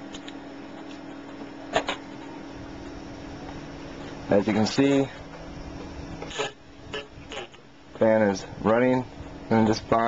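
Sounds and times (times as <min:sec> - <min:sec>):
cooling fan humming: 0:00.0 - 0:10.0
short rasping noises: 0:06.2 - 0:07.7.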